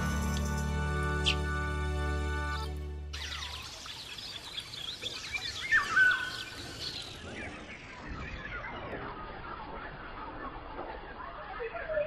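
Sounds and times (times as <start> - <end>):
songbirds singing and chirping: 2.4 - 12.0.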